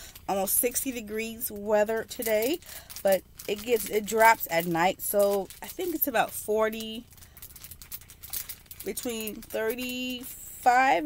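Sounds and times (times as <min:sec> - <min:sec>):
small items clicking and rattling: 0:00.0 - 0:10.9.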